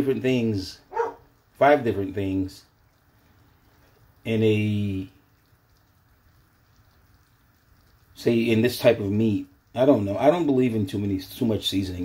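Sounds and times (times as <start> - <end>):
small pops of frying: 0.9 - 12.0.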